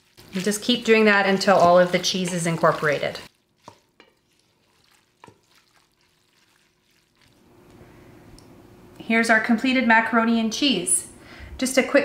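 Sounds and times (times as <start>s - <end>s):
spoon scraping and knocking pot: 0.9s - 4.4s
faint steady hum: 7.4s - 12.0s.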